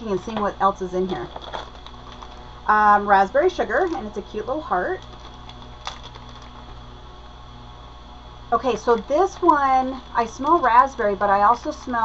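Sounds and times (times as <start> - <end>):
low electrical hum: 0.0 - 12.0
plastic clamshell clicking and crinkling: 5.0 - 6.8.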